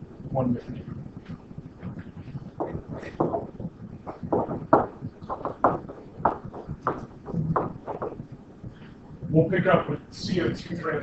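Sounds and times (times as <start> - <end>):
stylus tapping on tablet screen: 1.3 - 8.3.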